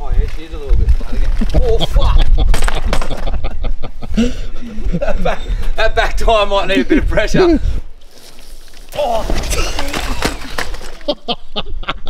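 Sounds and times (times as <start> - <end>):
man laughing hard: 1.7 - 5.5, 11.0 - 12.0.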